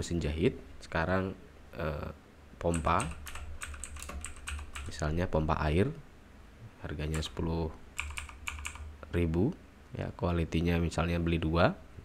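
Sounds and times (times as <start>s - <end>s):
typing on computer keyboard: 2.7s - 5.0s, 7.1s - 7.4s, 8.0s - 8.9s.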